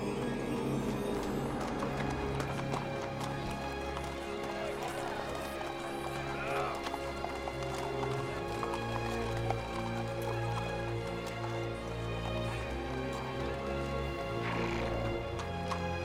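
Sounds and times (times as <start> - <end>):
crowd voices: 0.0 - 10.0
horse hooves clopping on cobblestones: 0.0 - 16.0
orchestral score with sustained notes: 0.0 - 16.0.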